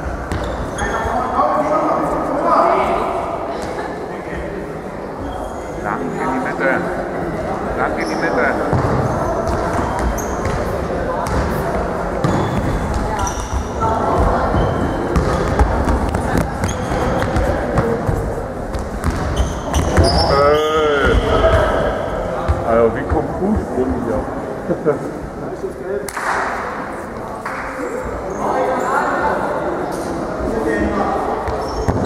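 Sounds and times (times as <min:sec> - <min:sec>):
hubbub of voices: 0:00.0 - 0:32.0
shoes squeaking: 0:00.3 - 0:01.2, 0:08.0 - 0:11.4, 0:12.2 - 0:22.2, 0:31.4 - 0:32.0.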